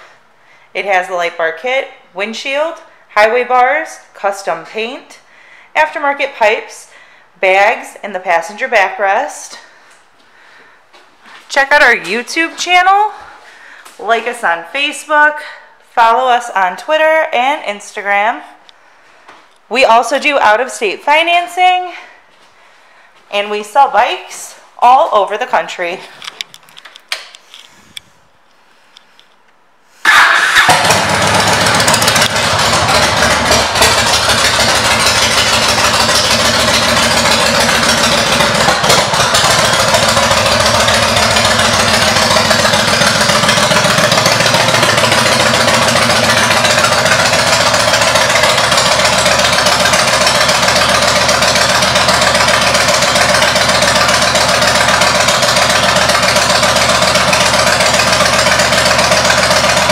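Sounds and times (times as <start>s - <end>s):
motorcycle engine starting and idling: 30.0s - 59.9s.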